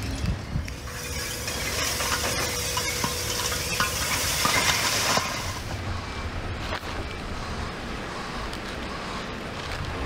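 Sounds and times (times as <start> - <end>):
clatter of falling debris: 0.8 - 5.6.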